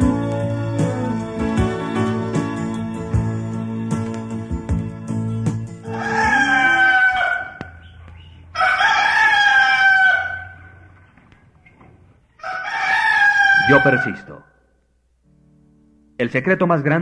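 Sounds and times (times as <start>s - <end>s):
soft music: 0.0s - 7.1s
rooster crowing: 5.8s - 10.9s, 12.4s - 14.8s.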